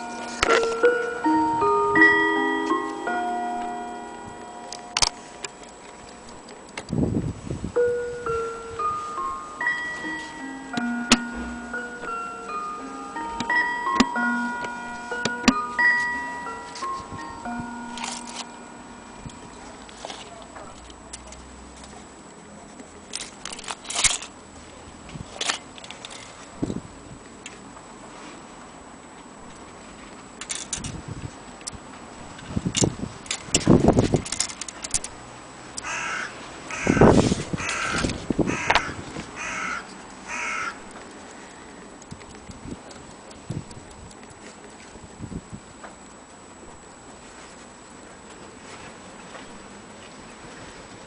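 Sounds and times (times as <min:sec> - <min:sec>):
clock ticking: 0:08.2 - 0:19.6
bird cawing harshly: 0:35.8 - 0:40.8.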